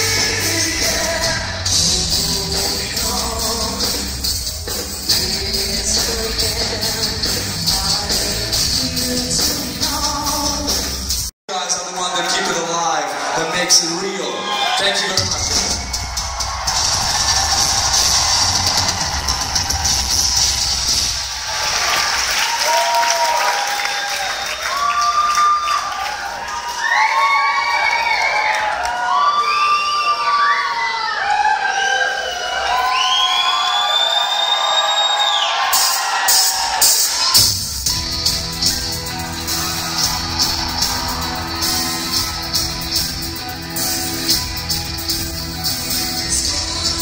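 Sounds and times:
crowd cheering and shouting: 0.0s - 8.6s, 10.0s - 47.0s.

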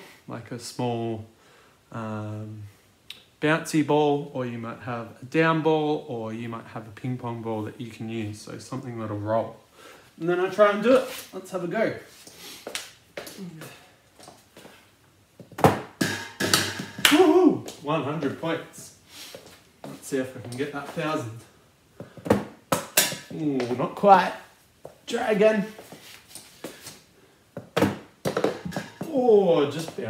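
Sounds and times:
tennis ball knocking in steel pot: 15.6s - 17.1s, 27.8s - 29.1s.

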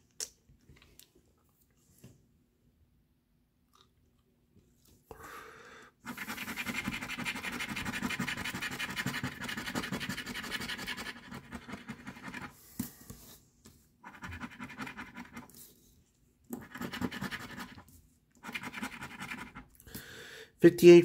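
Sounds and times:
coin scratching ticket: 6.1s - 12.5s, 14.1s - 15.5s, 16.6s - 17.8s, 18.4s - 19.6s.

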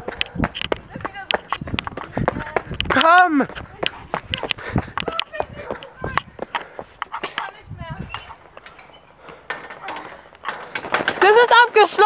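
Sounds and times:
running footsteps: 0.0s - 12.0s.

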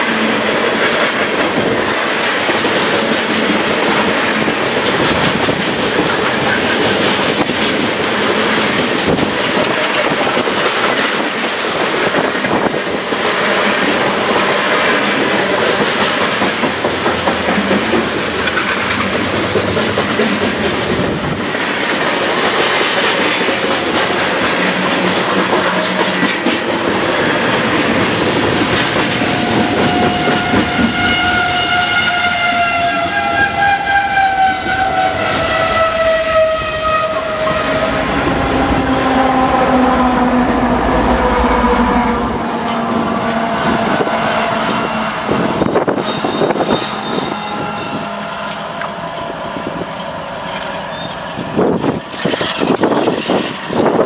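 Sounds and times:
train wheels clattering: 0.0s - 38.4s.

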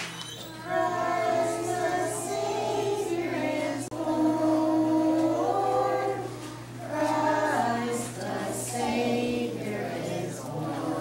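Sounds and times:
children singing together: 0.2s - 11.0s.

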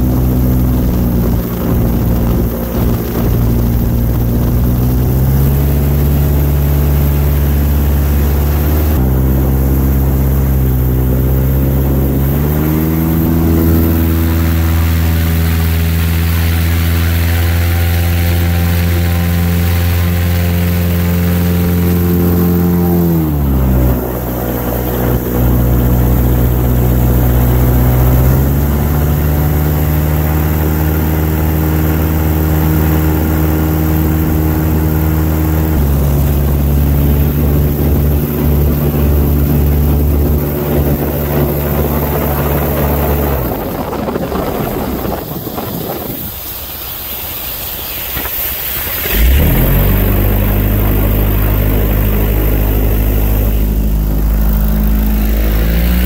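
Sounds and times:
airboat engine and propeller: 0.0s - 56.0s.

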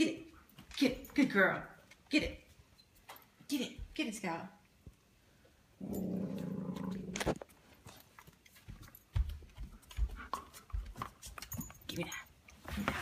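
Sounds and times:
dog growling: 5.8s - 7.4s.

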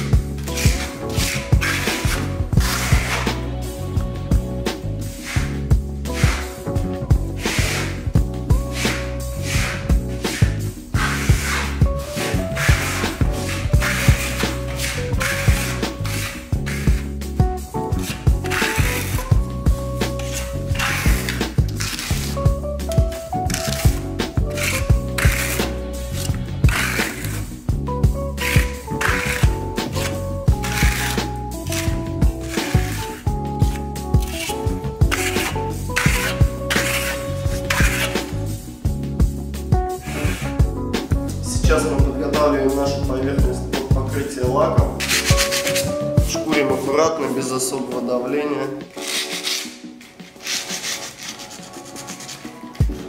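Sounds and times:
sandpaper rubbing surface: 0.0s - 3.5s, 5.2s - 6.7s, 7.4s - 17.3s, 17.9s - 27.5s, 28.3s - 38.5s, 39.9s - 40.7s, 44.9s - 46.1s, 48.9s - 53.0s
background music with steady beat: 0.0s - 53.0s.

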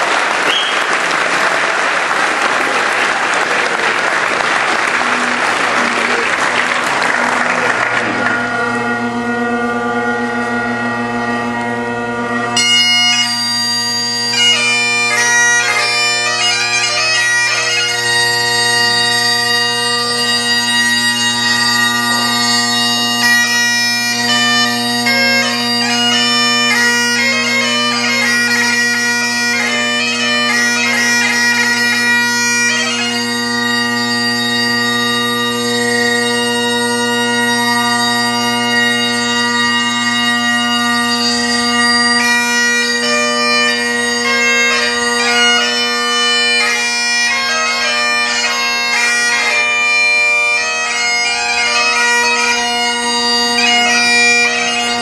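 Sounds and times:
bagpipe playing a tune: 4.1s - 55.0s.

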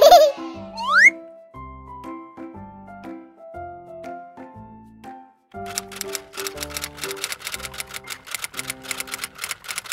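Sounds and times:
typewriter key clicks: 5.7s - 9.9s.

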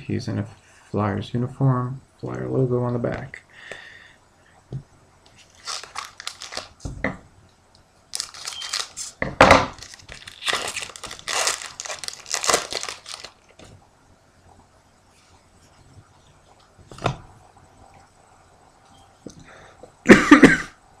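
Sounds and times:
foil wrapper tearing and crinkling: 5.4s - 6.8s, 8.1s - 13.5s.

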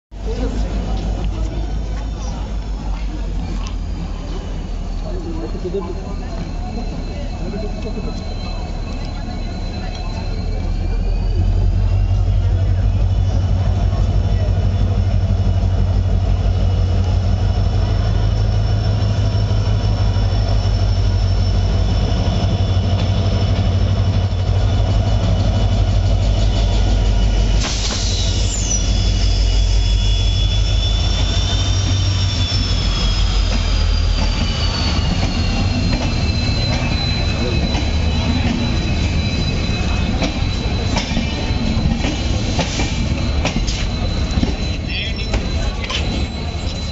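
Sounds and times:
train rumbling past: 0.1s - 46.9s
high squealing from train wheels: 0.2s - 46.9s.

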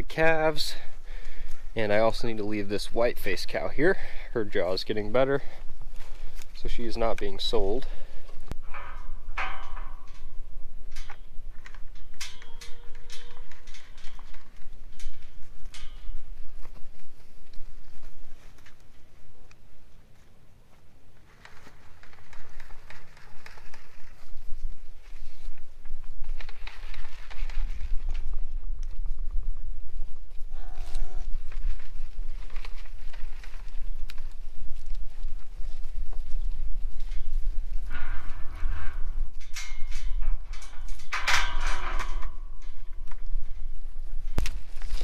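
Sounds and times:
cattle moving about: 0.0s - 45.0s
wind buffeting microphone: 23.6s - 45.0s
scuffling noises: 30.1s - 41.1s.

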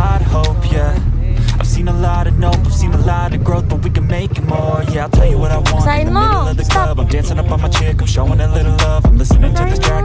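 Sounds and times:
motorcycle engine running: 0.0s - 10.0s
rapping over a beat: 0.0s - 10.0s.

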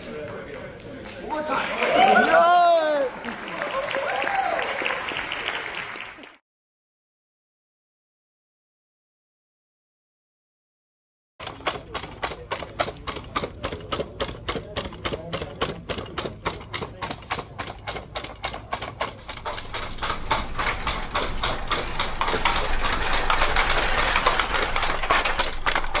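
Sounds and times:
robot steps clicking: 11.4s - 26.0s.

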